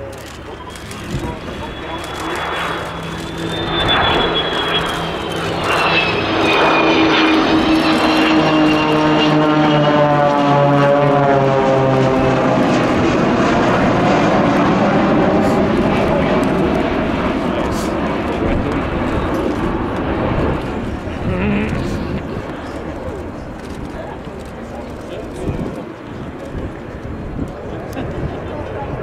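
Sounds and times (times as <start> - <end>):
jet engines flying past: 0.0 - 29.0
propeller plane engines: 0.0 - 29.0
high whine falling in pitch: 0.8 - 9.9.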